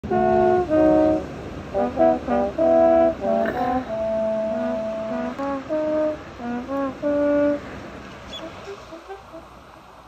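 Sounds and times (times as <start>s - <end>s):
trombone and saxophone playing jazz: 0.0s - 9.8s.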